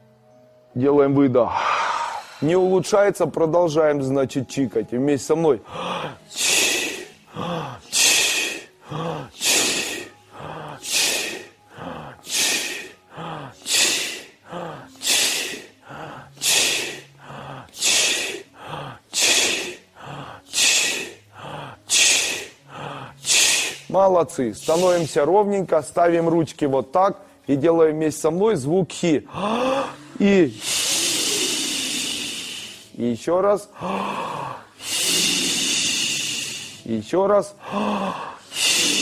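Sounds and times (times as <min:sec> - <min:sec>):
breath drawn in: 0:01.5 - 0:02.6, 0:29.4 - 0:32.9
man exhaling sharp hissing chi: 0:01.5 - 0:02.9, 0:05.6 - 0:24.0, 0:24.6 - 0:25.2, 0:29.3 - 0:33.0, 0:33.8 - 0:36.9, 0:37.6 - 0:39.0.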